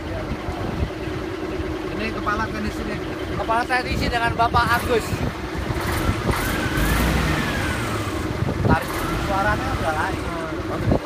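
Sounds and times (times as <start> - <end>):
diesel truck engine running: 0.0 - 11.0
engine whine rising in pitch: 4.6 - 10.4.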